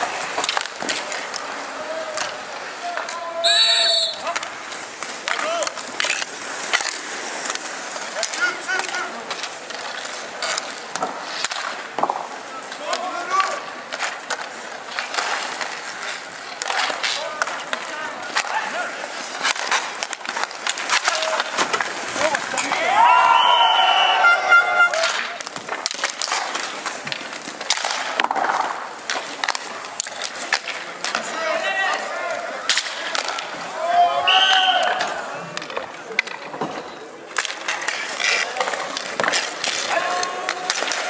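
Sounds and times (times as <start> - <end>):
hockey sticks clacking: 0.0 - 41.0
inline skate wheels rolling: 0.0 - 41.0
players calling out: 0.9 - 4.6, 16.0 - 25.4, 31.1 - 36.2, 37.4 - 41.0.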